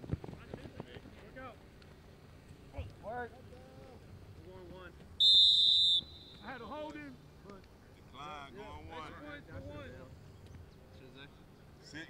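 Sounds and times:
referee's whistle blast: 0:05.2 - 0:06.6.

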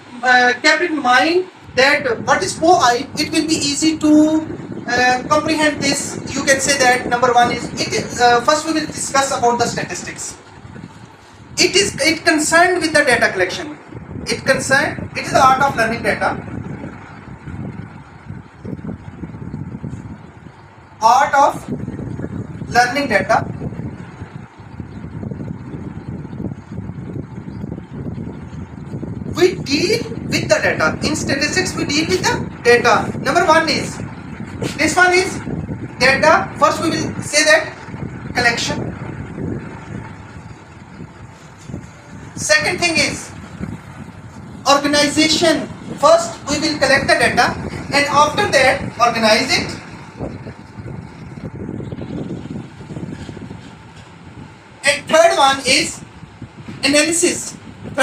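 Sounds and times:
low background noise: 0:00.0 - 0:58.0
low rumbling background noise: 0:00.0 - 0:58.0.

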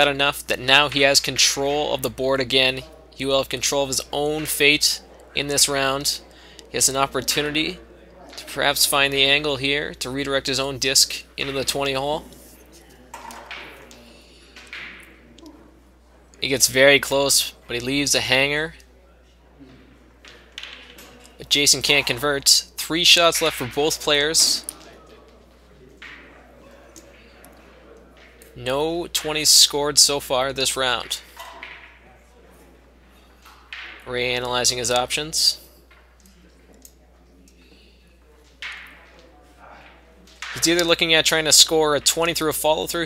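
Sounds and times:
commentator speaking: 0:00.0 - 0:12.4, 0:21.4 - 0:25.0, 0:28.6 - 0:31.3, 0:39.7 - 0:43.0
wooden discs clicking together: 0:20.2 - 0:22.2.

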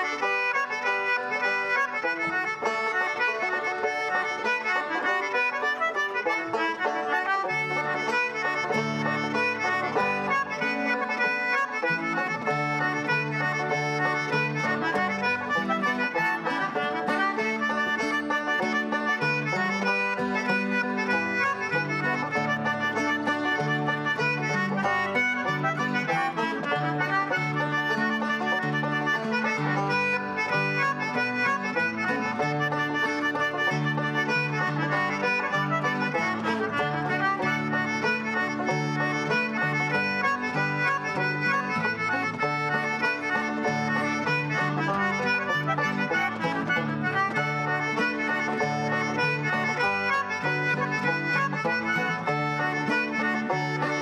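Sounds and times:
banjo: 0:00.0 - 0:54.0
guitar: 0:00.0 - 0:54.0
squeezebox playing a tune: 0:00.0 - 0:54.0.

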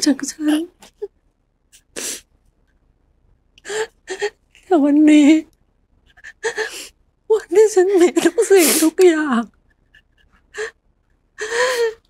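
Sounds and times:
woman sobbing: 0:03.6 - 0:04.4, 0:06.1 - 0:06.9, 0:07.8 - 0:09.1, 0:11.4 - 0:12.0
woman tearful speech: 0:06.3 - 0:09.5.

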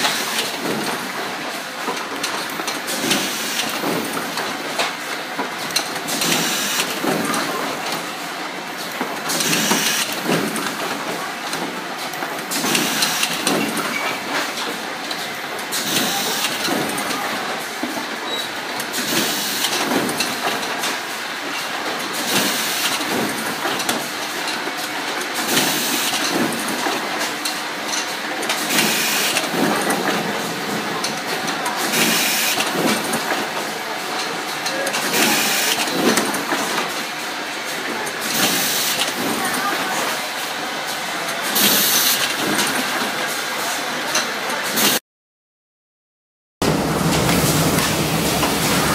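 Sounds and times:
machinery clattering: 0:46.6 - 0:48.9.

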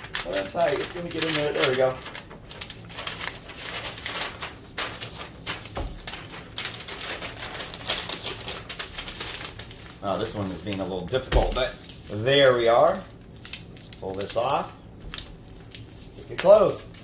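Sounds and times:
envelope rustling and crinkling: 0:00.0 - 0:17.0.

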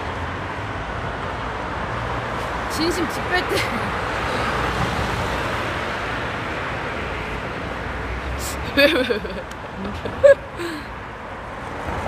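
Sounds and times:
road traffic hum: 0:00.0 - 0:12.0.

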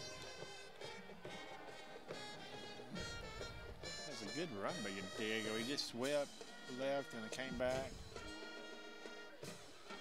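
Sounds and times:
distant brass band playing: 0:01.0 - 0:10.0.

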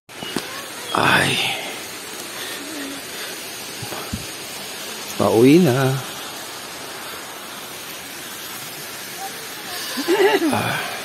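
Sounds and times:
outdoor background hiss: 0:00.1 - 0:11.0.

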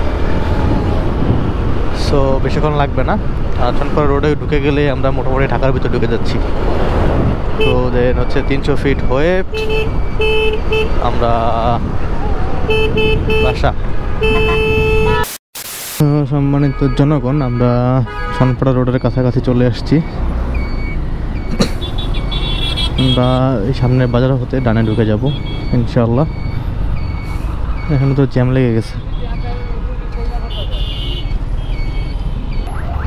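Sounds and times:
motorcycle road and wind noise: 0:00.0 - 0:15.3, 0:16.8 - 0:33.0
vehicle horns honking: 0:07.6 - 0:08.0, 0:09.5 - 0:11.1, 0:12.7 - 0:15.4, 0:16.5 - 0:18.8, 0:21.6 - 0:23.6, 0:24.7 - 0:25.7, 0:28.9 - 0:33.0.

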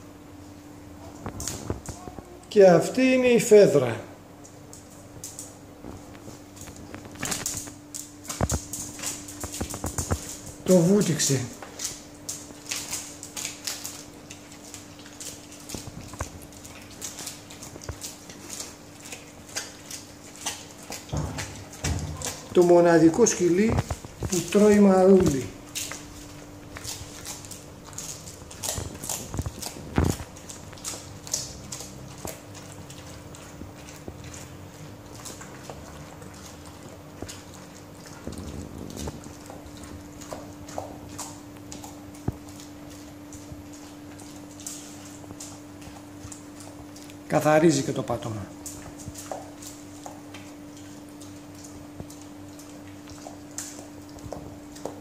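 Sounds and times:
dog crunching lettuce: 0:00.4 - 0:55.0
clicks on tiled floor: 0:01.1 - 0:02.5, 0:04.4 - 0:10.8, 0:11.5 - 0:34.5
wet mouth sounds: 0:04.5 - 0:47.3.

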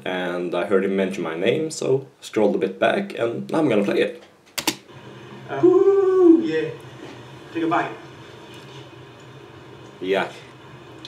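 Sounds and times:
quiet steady hum and hiss: 0:00.0 - 0:11.0.

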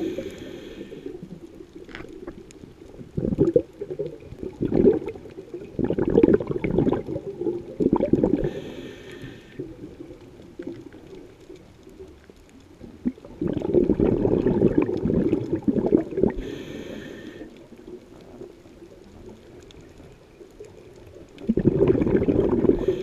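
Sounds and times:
regulator hiss on inhale: 0:00.0 - 0:02.0, 0:08.3 - 0:10.1, 0:16.2 - 0:17.9, 0:22.6 - 0:23.0
underwater air bubbling: 0:00.0 - 0:23.0.

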